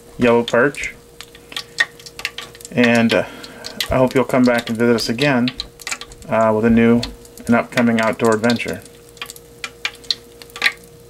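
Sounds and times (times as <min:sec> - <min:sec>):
hot oil crackling and popping: 0:00.0 - 0:11.0
steady faint hum: 0:00.0 - 0:11.0.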